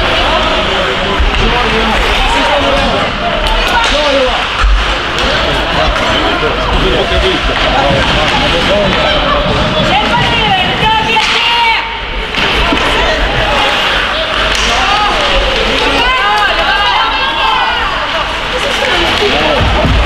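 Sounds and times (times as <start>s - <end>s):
hockey play on ice: 0.0s - 20.0s
voices shouting: 8.8s - 19.6s.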